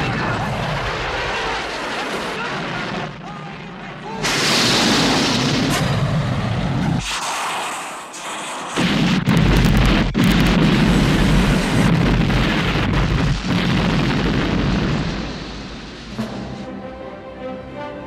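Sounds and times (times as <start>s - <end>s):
explosion blasts: 0.0s - 7.4s, 8.2s - 16.6s
heavy rumbling: 8.8s - 16.7s.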